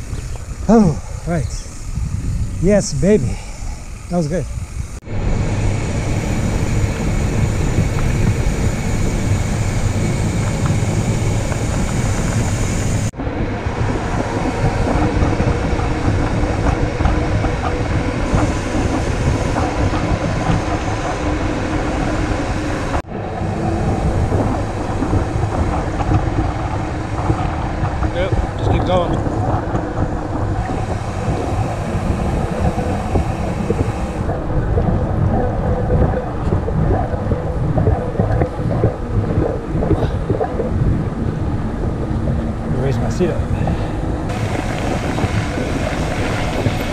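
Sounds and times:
wind on microphone: 0.0s - 46.9s
bike tyres rolling on pavement: 4.6s - 46.9s.

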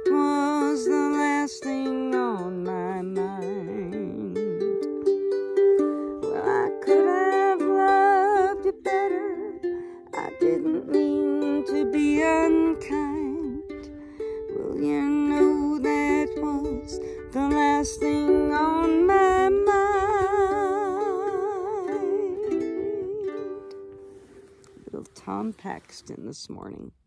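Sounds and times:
woman singing with vibrato: 0.0s - 5.1s, 6.1s - 23.7s
ukulele strumming chords: 0.0s - 25.8s.

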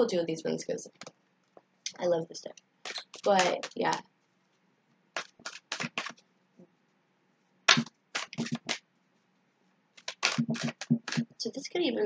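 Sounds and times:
cards slapping together: 2.8s - 4.0s, 5.2s - 6.2s, 7.7s - 8.8s, 10.0s - 11.3s.

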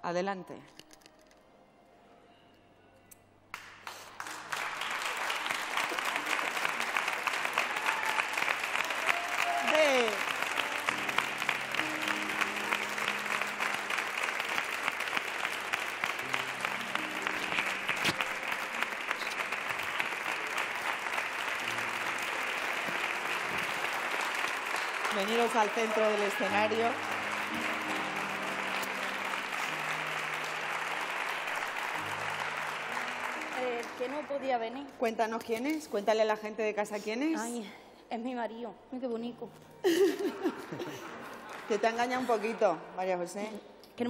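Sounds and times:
soft background music: 0.0s - 6.1s, 8.4s - 44.0s
audience applauding: 3.5s - 34.9s, 39.9s - 42.6s.

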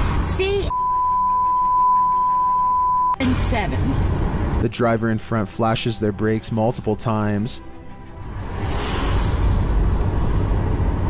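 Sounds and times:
censor bleep tone: 0.7s - 3.2s.

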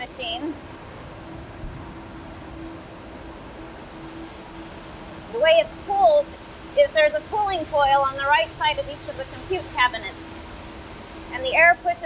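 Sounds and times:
constant hum: 0.0s - 12.0s
cooling blowers whooshing: 0.0s - 12.0s.

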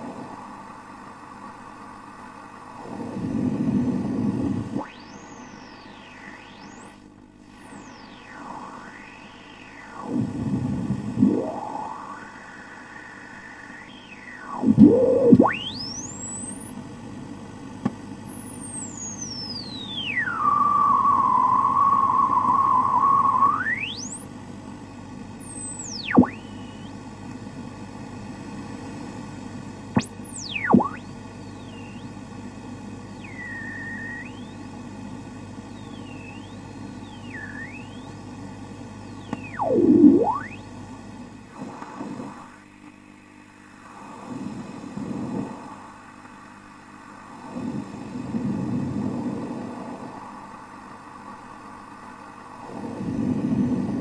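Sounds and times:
radio static hiss: 0.0s - 54.0s
gliding whistling tones: 4.8s - 7.0s, 7.6s - 16.8s, 18.7s - 24.2s, 30.4s - 32.1s, 33.1s - 34.6s, 35.7s - 38.1s, 39.2s - 40.6s.

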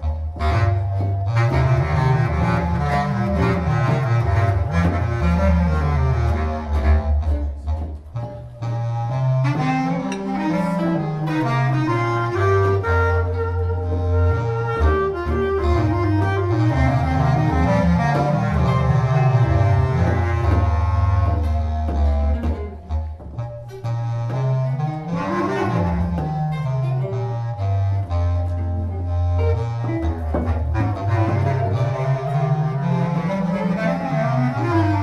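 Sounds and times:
bass clarinet: 0.0s - 35.0s
cello: 0.0s - 35.0s.

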